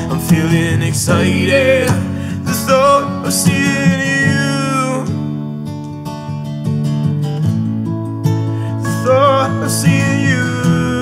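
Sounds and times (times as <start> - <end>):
man singing: 0.0 - 5.3, 8.6 - 11.0
acoustic guitars strumming: 0.0 - 11.0.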